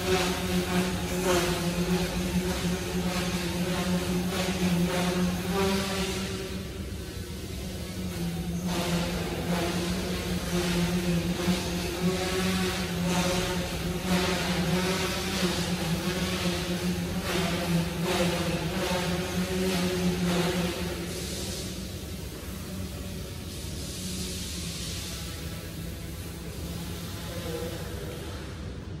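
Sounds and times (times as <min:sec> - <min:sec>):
toy helicopter rotors humming: 0:00.0 - 0:29.0.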